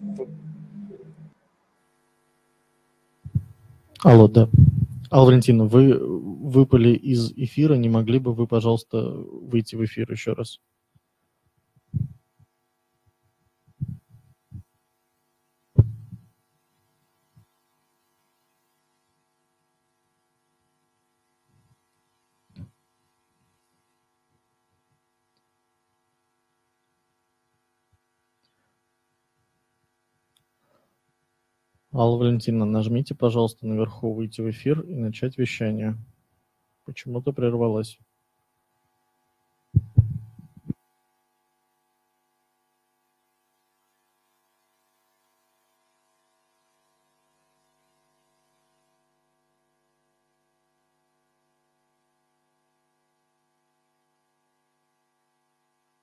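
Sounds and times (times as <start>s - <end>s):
faint electrical hum: 0.0s - 56.0s
microphone handling thumps: 3.3s - 3.8s, 4.5s - 5.1s, 11.9s - 12.2s, 13.7s - 14.6s, 15.8s - 16.3s, 39.8s - 40.8s.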